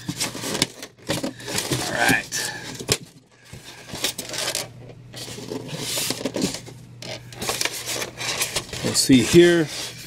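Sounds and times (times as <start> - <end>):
styrofoam scraping against box: 7.5 - 10.0.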